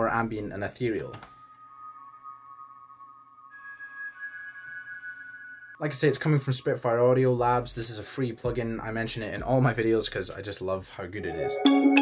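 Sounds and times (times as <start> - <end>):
soft ambient bell tones: 0.9 - 6.8.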